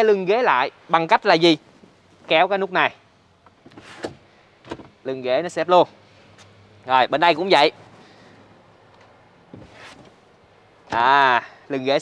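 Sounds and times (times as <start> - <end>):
seatback knocking down: 9.5 - 10.2.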